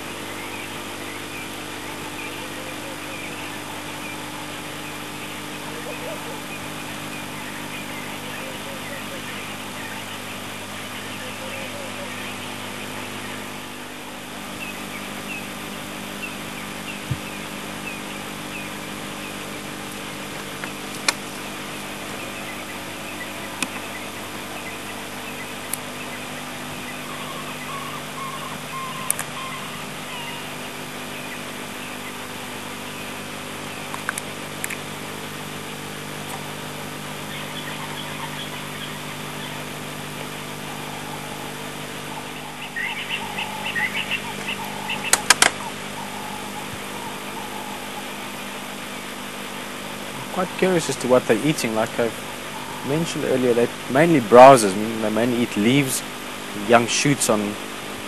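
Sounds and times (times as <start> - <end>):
bird chirps: 0.0 - 34.5, 35.4 - 57.6
steady low hum: 0.0 - 58.0.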